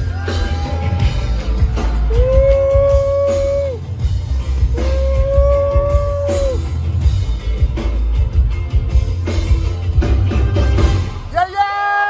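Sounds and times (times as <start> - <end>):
live rock band: 0.0 - 11.5.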